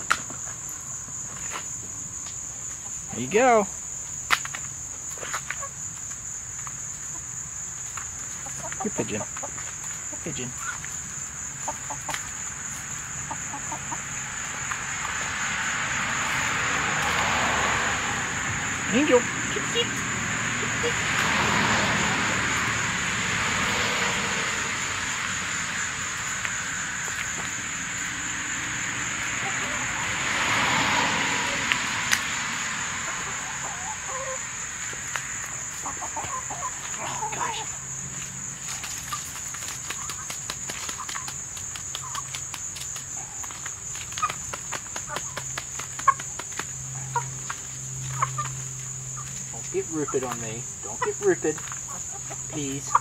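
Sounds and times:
beaks tapping on asphalt: 0:03.9 - 0:15.4, 0:34.8 - 0:53.0
hens clucking: 0:04.9 - 0:17.4, 0:18.0 - 0:53.0.

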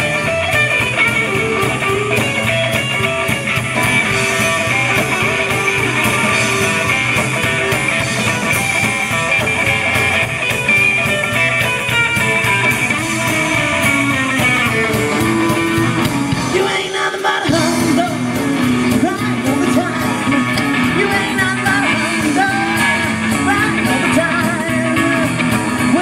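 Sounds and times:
drum kit: 0:00.0 - 0:26.0
electric guitar: 0:00.0 - 0:26.0
upright bass: 0:00.0 - 0:26.0
person singing: 0:14.4 - 0:26.0.

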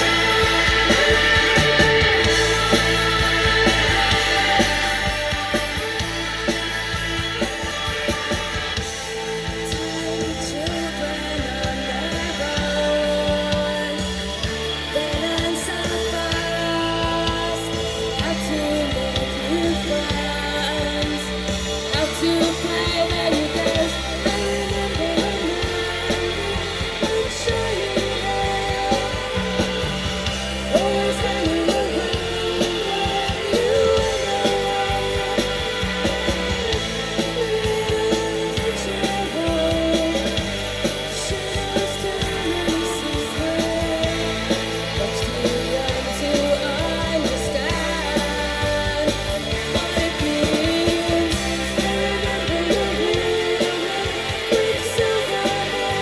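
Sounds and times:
bass guitar: 0:00.0 - 0:56.0
drums: 0:00.0 - 0:56.0
layered electric guitars: 0:00.0 - 0:56.0
woman singing: 0:08.6 - 0:56.0.

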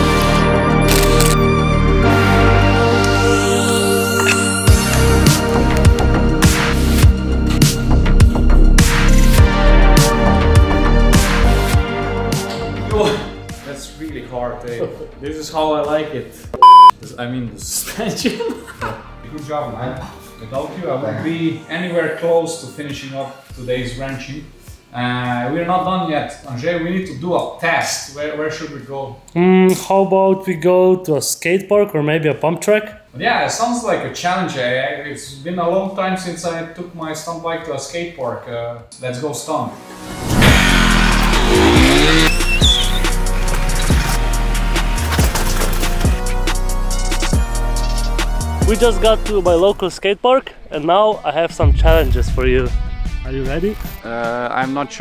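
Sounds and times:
men talking: 0:12.9 - 0:16.4, 0:17.1 - 0:39.8, 0:48.6 - 0:55.0
high-pitched censor beep: 0:16.6 - 0:16.9
engine revving: 0:40.0 - 0:43.5
tyre screech: 0:40.3 - 0:43.5
music with heavy bass beat: 0:40.4 - 0:44.8.

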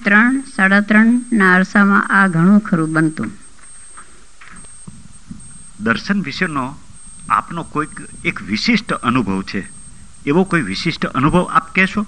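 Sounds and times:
faint background hiss: 0:00.0 - 0:12.0
low hum: 0:00.0 - 0:12.0
person speaking: 0:04.9 - 0:12.0.

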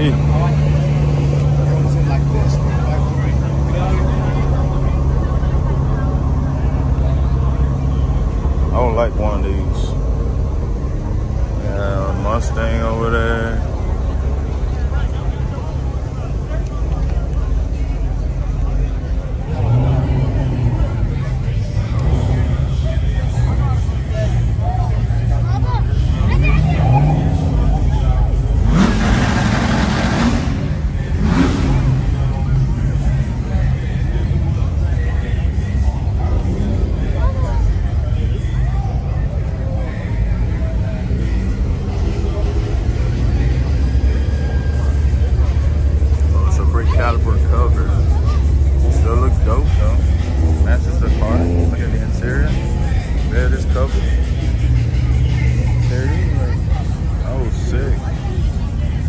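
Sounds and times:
car engines running: 0:00.0 - 0:59.0
people talking: 0:00.0 - 0:59.0
loud rush of noise: 0:12.7 - 0:46.7
engine revving: 0:19.3 - 0:38.5, 0:40.4 - 0:59.0.

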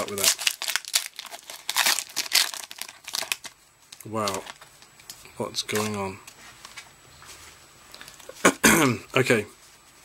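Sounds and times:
man clearing his throat: 0:08.3 - 0:09.1.

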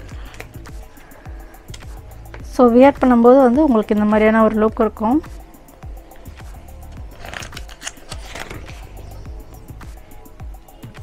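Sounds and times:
background music with electronic beat: 0:00.0 - 0:11.0
catalog pages turning: 0:07.1 - 0:09.2.

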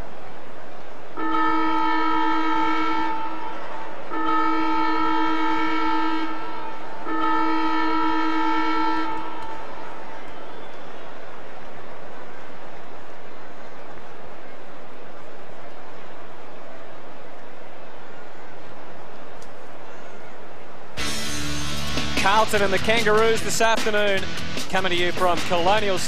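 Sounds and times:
siren horn blasts: 0:01.2 - 0:10.1.

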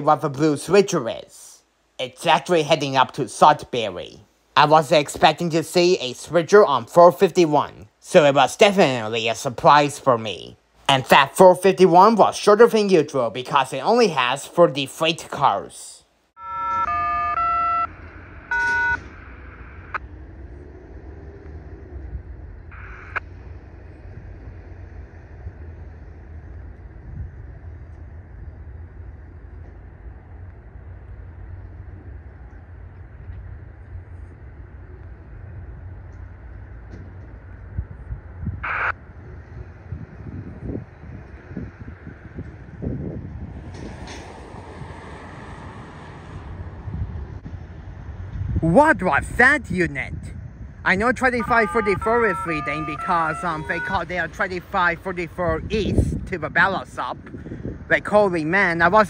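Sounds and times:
multi-tone horn blasts: 0:16.4 - 0:19.0, 0:51.2 - 0:54.7
wind on microphone: 0:20.0 - 0:52.3, 0:55.0 - 0:58.2.

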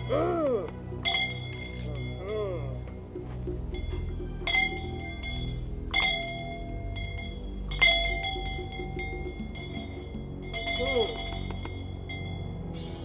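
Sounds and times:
low background music drone: 0:00.0 - 0:13.0
metal bell struck: 0:01.0 - 0:02.8, 0:03.7 - 0:12.7.

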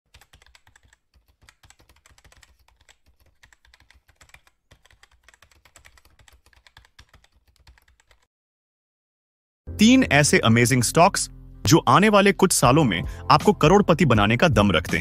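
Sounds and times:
computer keyboard typing: 0:00.1 - 0:08.3.

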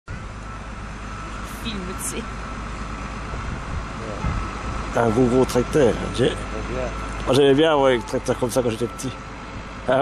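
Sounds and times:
tractor diesel engine running: 0:00.1 - 0:10.0.

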